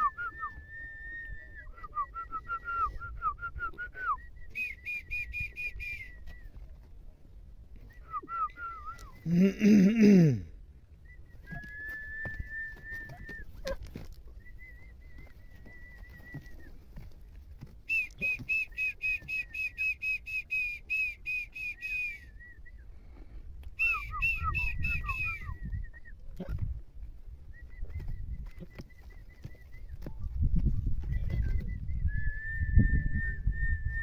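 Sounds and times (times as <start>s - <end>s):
high whistled notes: 23.8s - 26.1s.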